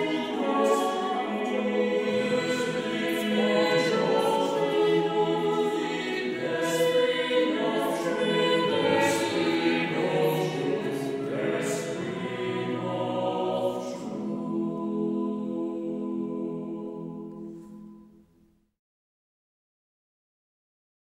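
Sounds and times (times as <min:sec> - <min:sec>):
choir singing a cappella: 0:00.0 - 0:18.3.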